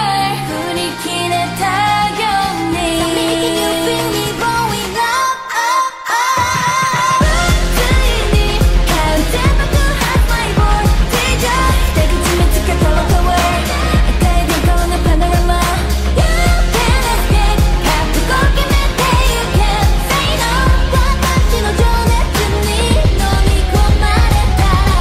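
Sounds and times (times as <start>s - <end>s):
female group singing: 0.0s - 25.0s
pop beat with deep bass: 0.0s - 25.0s.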